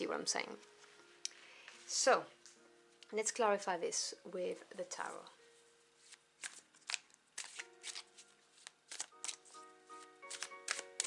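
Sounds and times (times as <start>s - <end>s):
cards being shuffled: 6.0s - 11.0s.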